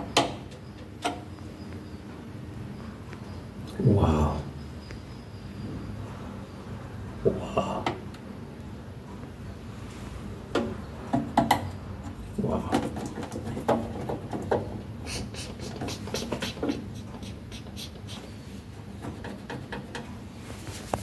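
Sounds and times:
hands working at wire terminals: 10.5 - 20.2.

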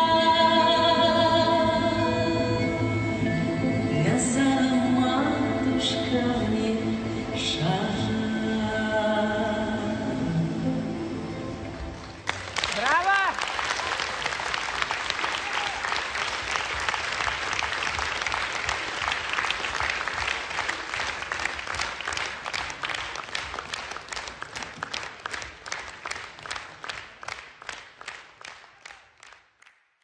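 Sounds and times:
audience applauding: 11.6 - 29.9.

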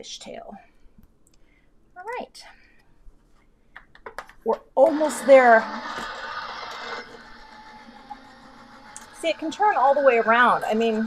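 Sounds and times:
die-cutting machine motor running: 4.8 - 11.0.

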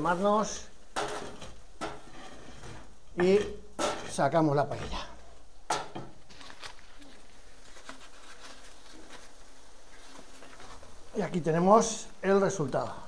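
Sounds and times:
crackle of embers: 0.0 - 13.0.

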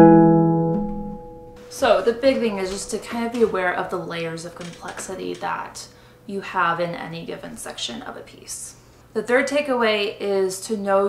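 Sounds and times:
harp chord ringing: 0.0 - 2.1
woman speaking: 1.7 - 11.0.

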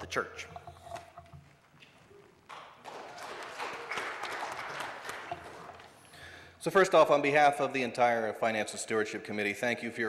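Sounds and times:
congregation applauding: 2.4 - 6.5.

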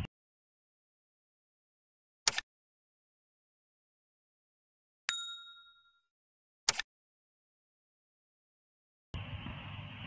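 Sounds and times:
notification bell ding: 5.1 - 6.1.

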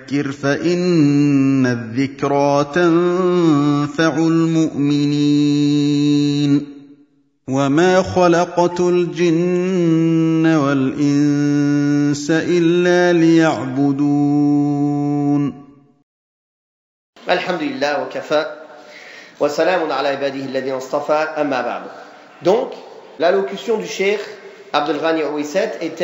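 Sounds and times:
man reciting melodically: 0.0 - 6.9, 7.5 - 15.7, 17.2 - 26.0.

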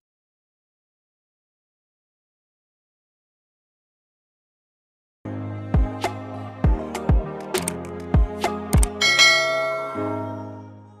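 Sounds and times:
bell-like chime: 9.0 - 10.3
low sustained chord: 9.0 - 10.7.

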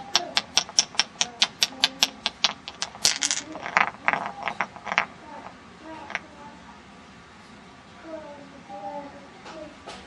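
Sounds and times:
rapid sharp taps: 0.0 - 4.8.

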